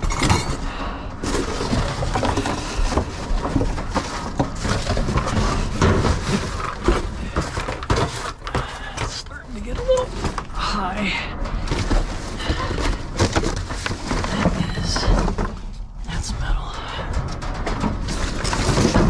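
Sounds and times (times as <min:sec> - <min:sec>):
knocks and thuds in metal dumpster: 0:00.0 - 0:19.0
cardboard rustling and scraping: 0:01.2 - 0:15.9, 0:17.5 - 0:19.0.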